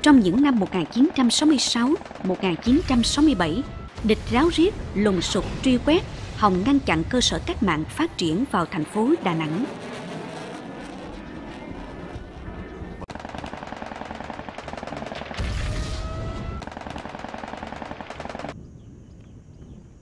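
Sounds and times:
rapid machine-gun fire: 0:00.0 - 0:05.0, 0:13.1 - 0:18.6
heavy explosion boom: 0:02.7 - 0:08.6, 0:15.4 - 0:16.6.

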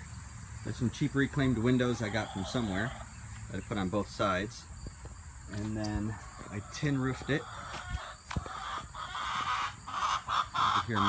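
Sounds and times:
chicken clucking: 0:00.8 - 0:04.5, 0:05.5 - 0:11.0.

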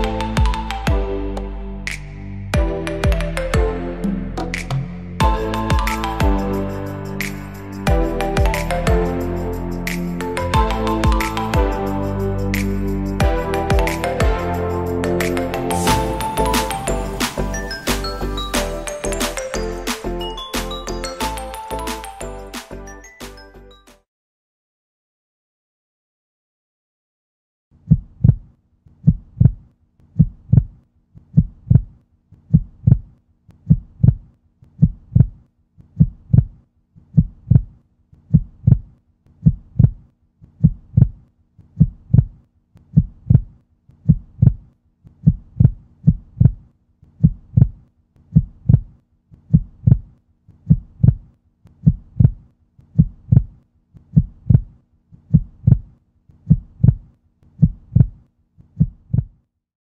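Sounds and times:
heartbeat thumps: 0:27.9 - 0:29.6, 0:30.2 - 0:30.8, 0:31.4 - 0:31.9, 0:32.5 - 0:33.1, 0:33.7 - 0:34.2, 0:34.8 - 0:35.4, 0:36.0 - 0:36.6, 0:37.2 - 0:40.0, 0:40.6 - 0:41.2, 0:41.8 - 0:42.4, 0:43.0 - 0:46.6, 0:47.2 - 0:48.9, 0:49.5 - 0:50.1, 0:50.7 - 0:51.2, 0:51.8 - 0:52.4, 0:53.0 - 0:53.6, 0:54.2 - 0:54.7, 0:55.3 - 0:55.9, 0:56.5 - 0:57.0, 0:57.6 - 0:58.2, 0:58.8 - 0:59.4.

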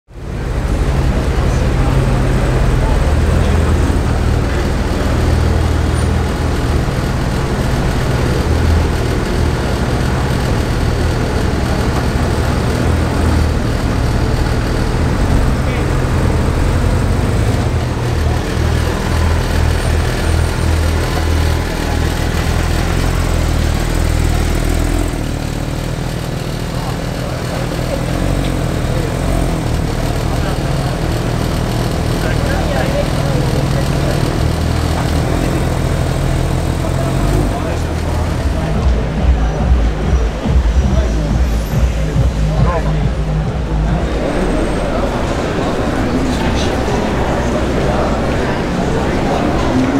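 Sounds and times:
car engine idling: 0:00.1 - 0:49.9
people talking: 0:00.1 - 0:49.9.

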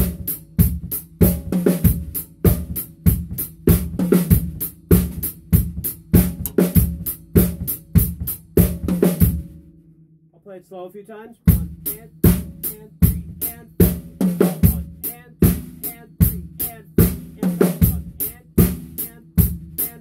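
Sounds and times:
drum kit groove: 0:00.0 - 0:09.7, 0:11.4 - 0:20.0.

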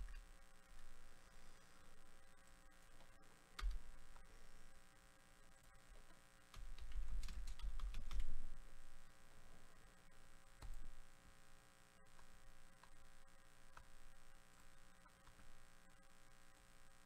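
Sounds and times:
steady electrical hum: 0:00.0 - 0:17.0
computer keyboard typing: 0:02.9 - 0:03.9, 0:06.5 - 0:08.6.

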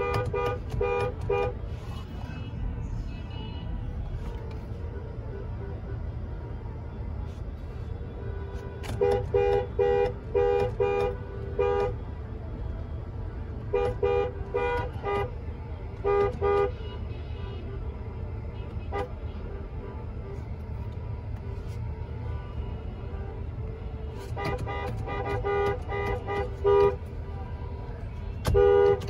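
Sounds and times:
car interior rumble: 0:00.0 - 0:29.0.

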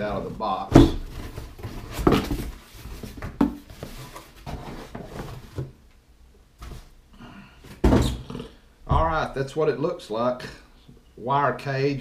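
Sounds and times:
cardboard rustling and scraping: 0:00.0 - 0:05.8
thumps: 0:00.7 - 0:03.9, 0:07.7 - 0:09.4.

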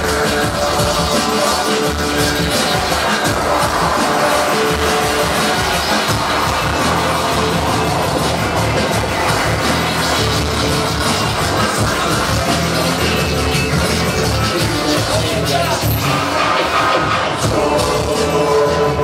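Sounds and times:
hip-hop music with steady beat: 0:00.0 - 0:19.0
vinyl record scratching: 0:00.0 - 0:19.0.

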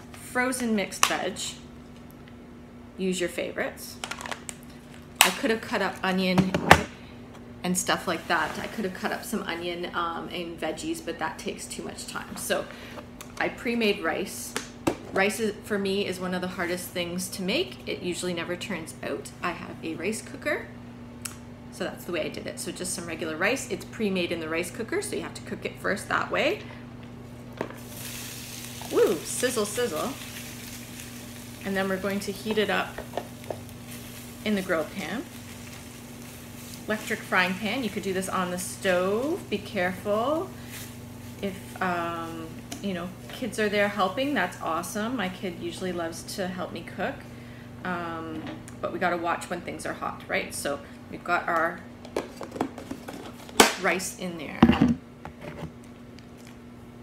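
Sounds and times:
steady low hum: 0:00.0 - 0:57.0
rice sizzling in hot oil: 0:27.8 - 0:46.0.

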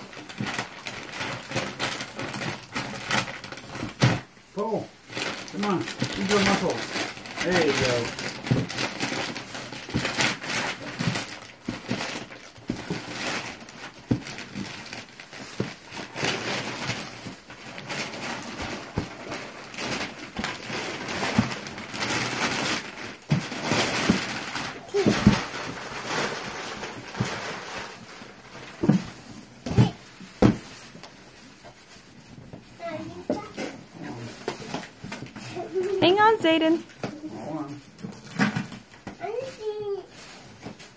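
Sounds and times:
wrapping paper tearing and crinkling: 0:00.0 - 0:40.9
cardboard box thumps: 0:28.8 - 0:30.7.

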